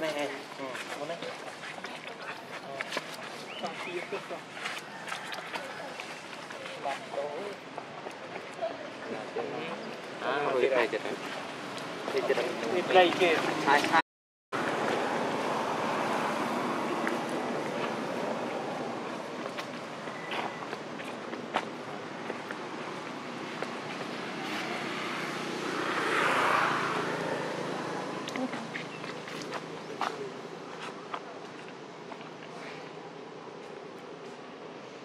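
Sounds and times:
outdoor background noise: 0.0s - 35.0s.

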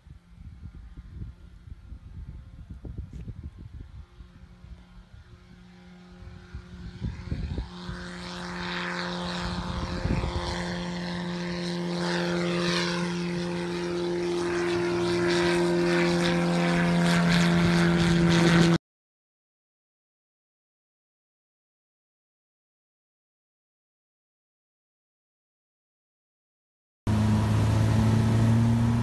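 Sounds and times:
light aircraft propeller engine: 0.0s - 18.8s, 27.1s - 29.0s.

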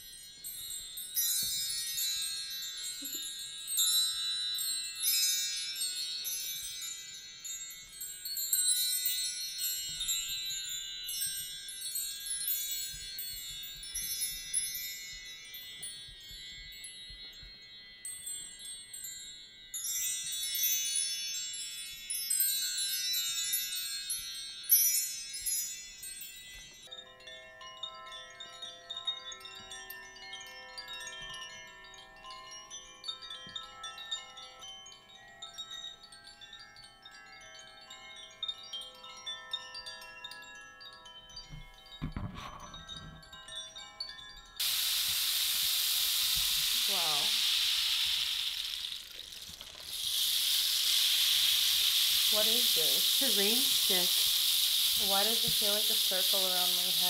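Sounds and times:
bar chimes shimmering: 0.0s - 57.0s
rain stick pattering: 44.6s - 57.0s.

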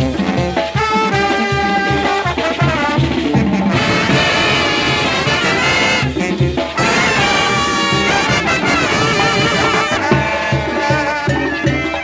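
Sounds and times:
hand drums: 0.0s - 12.0s
low brass beat: 0.0s - 12.0s
trumpets and trombones: 0.0s - 12.0s.

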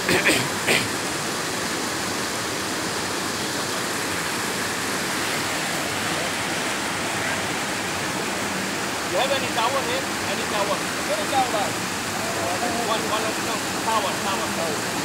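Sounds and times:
river rushing over stones: 0.0s - 15.0s.

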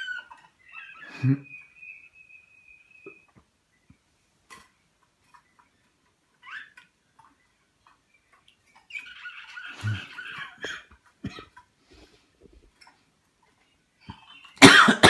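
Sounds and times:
finches whistling and chirping: 0.0s - 4.0s, 8.1s - 10.8s
birds twittering song: 0.0s - 14.9s.

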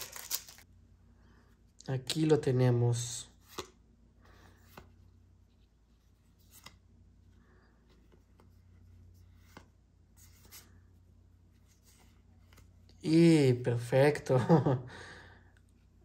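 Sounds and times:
trading cards rustling and clicking: 0.0s - 0.6s.

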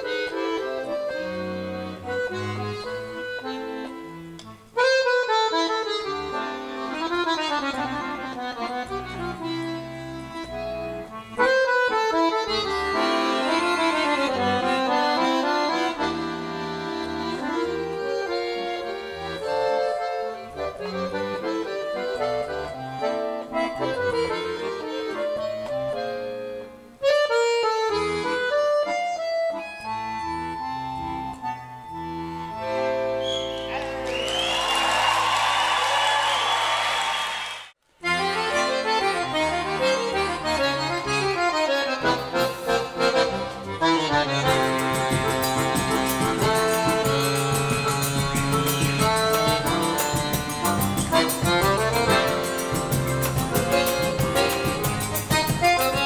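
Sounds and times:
accordion with band: 0.0s - 34.8s, 38.0s - 56.0s
audience applause: 33.6s - 37.7s.

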